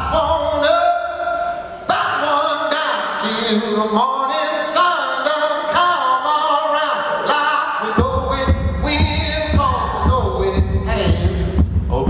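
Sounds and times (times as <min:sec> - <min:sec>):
person singing blues: 0:00.0 - 0:12.0
heavy low thumping beat: 0:08.0 - 0:12.0.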